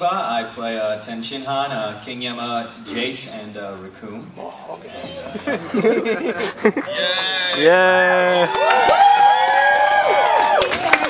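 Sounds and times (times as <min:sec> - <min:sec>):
audience cheering with whoops: 0:06.8 - 0:11.0.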